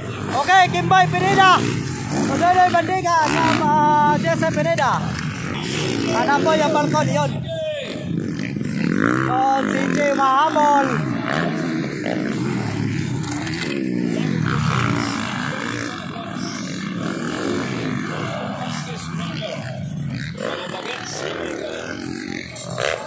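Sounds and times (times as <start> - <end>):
dirt bike engines revving: 0.0 - 23.0
voices: 0.0 - 23.0.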